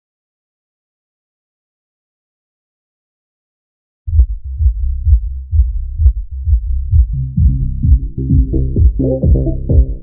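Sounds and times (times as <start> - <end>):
electronic dance music: 7.4 - 10.0.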